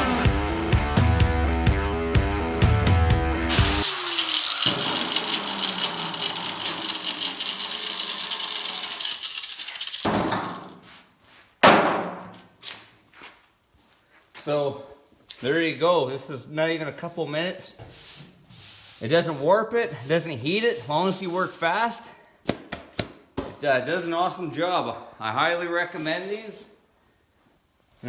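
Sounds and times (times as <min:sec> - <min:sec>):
rock music with heavy beat: 0:00.0 - 0:03.8
angle grinder whirring: 0:03.5 - 0:10.7
knocks and rustles: 0:10.0 - 0:10.9.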